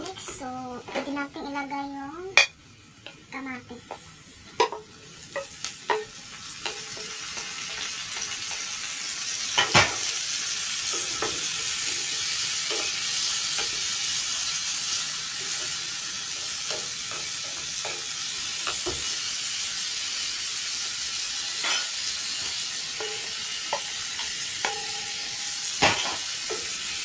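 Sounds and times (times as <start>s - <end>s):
tomatoes sizzling in frying pan: 0.0s - 27.0s
spatula tapping and scraping pan: 3.8s - 8.7s, 21.6s - 27.0s.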